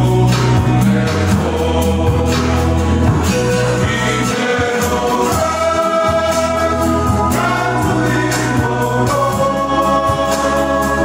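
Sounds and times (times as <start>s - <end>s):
acoustic guitars: 0.0s - 11.0s
male choir singing a hymn: 0.0s - 11.0s.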